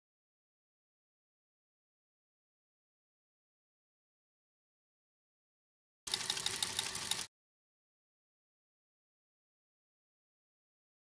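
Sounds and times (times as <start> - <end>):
fast mechanical chattering: 6.1 - 7.3.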